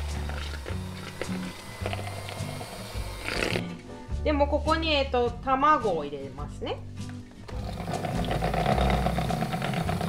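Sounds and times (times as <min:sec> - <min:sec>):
electric hand mixer whisking: 0:00.0 - 0:03.8, 0:07.5 - 0:10.0.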